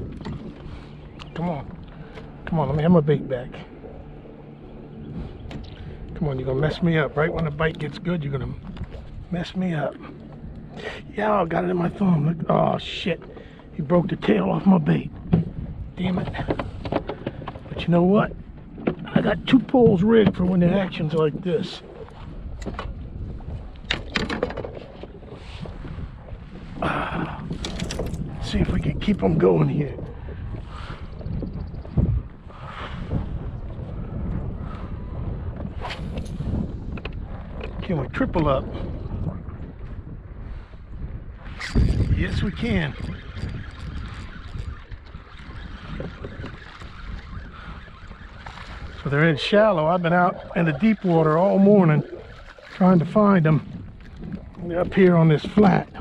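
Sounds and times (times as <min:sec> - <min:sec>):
wind rumbling on microphone: 0:00.0 - 0:56.0
gear clicking and knocking in kayak: 0:15.1 - 0:21.5, 0:22.1 - 0:25.2, 0:27.1 - 0:30.6, 0:35.5 - 0:38.0, 0:41.6 - 0:56.0.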